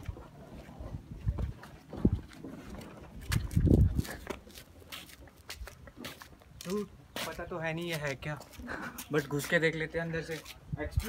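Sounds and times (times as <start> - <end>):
footsteps on dry grass and stone: 0.0 - 11.0.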